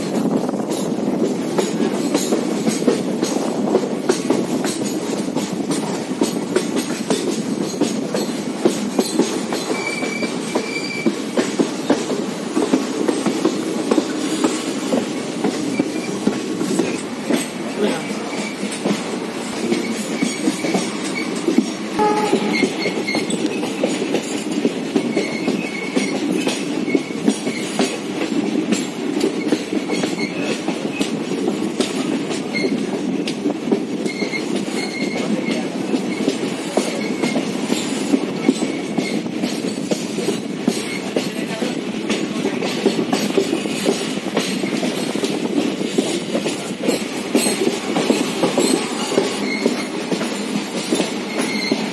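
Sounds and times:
train rumbling on rails: 0.0s - 51.9s
train wheels squealing: 6.0s - 11.6s, 15.5s - 17.5s, 18.1s - 28.0s, 28.7s - 31.2s, 32.0s - 33.0s, 33.9s - 41.4s, 43.5s - 45.2s, 46.0s - 51.9s.

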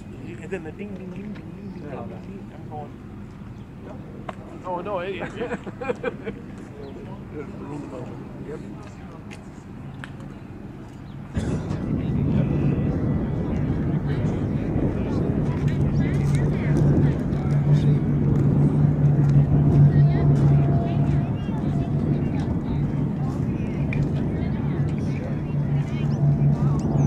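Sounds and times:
propeller aircraft engines droning: 0.0s - 27.0s.

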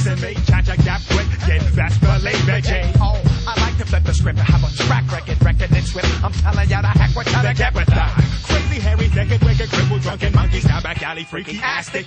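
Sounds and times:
rapping over a beat: 0.0s - 12.0s.

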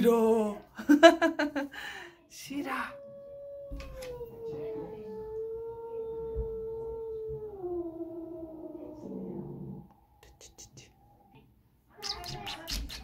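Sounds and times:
dog howling: 2.5s - 10.1s.

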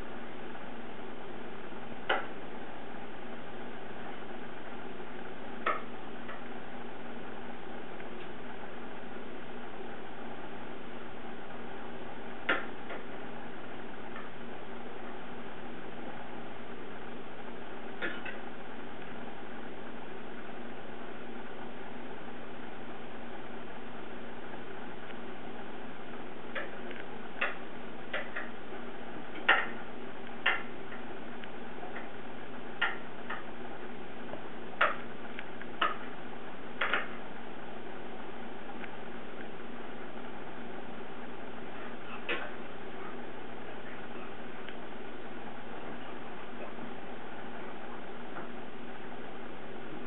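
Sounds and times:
steady background hiss: 0.0s - 50.0s.

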